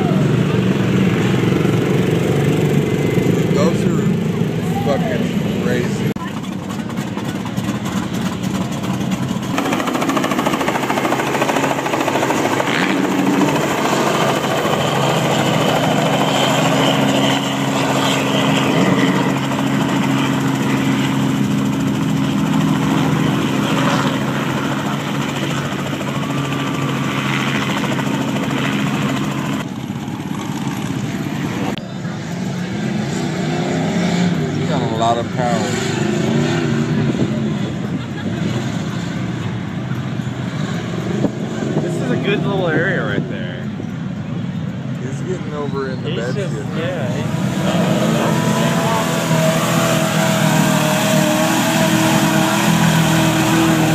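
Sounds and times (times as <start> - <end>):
crowd voices: 0.0 - 27.1, 34.3 - 40.4, 41.3 - 53.9
motor engines running: 0.0 - 53.9.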